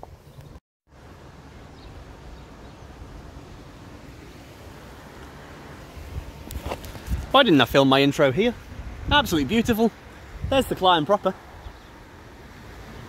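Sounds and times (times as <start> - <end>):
bicycle tyres on road: 2.4 - 10.5
wind rushing over microphone: 5.5 - 13.0.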